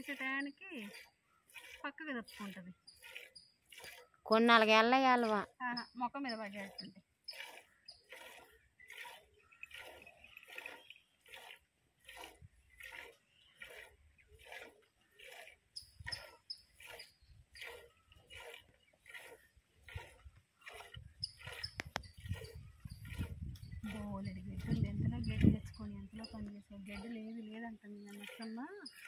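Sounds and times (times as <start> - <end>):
milk squirting into steel pot: 0.0 - 5.3, 6.5 - 24.0.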